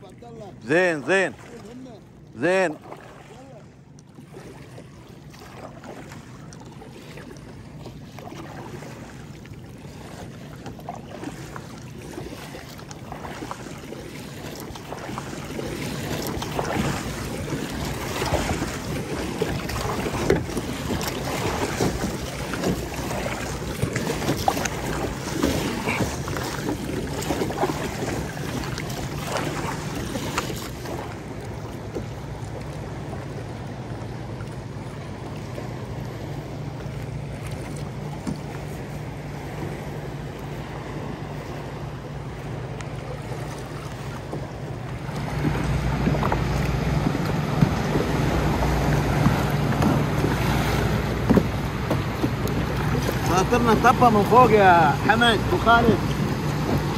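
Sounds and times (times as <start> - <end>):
water splashing against kayak hull: 0.0 - 56.9.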